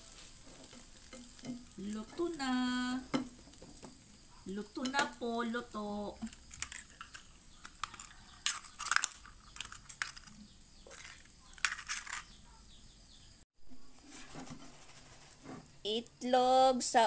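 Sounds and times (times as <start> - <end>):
faint steady hiss: 0.0 - 17.0
utensils clicking and scraping: 0.1 - 5.3, 6.1 - 12.4.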